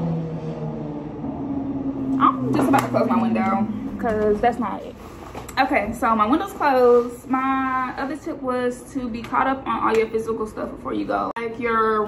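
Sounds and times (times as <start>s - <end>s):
passing vehicle engine drone: 0.0s - 5.0s
people talking: 2.2s - 12.0s.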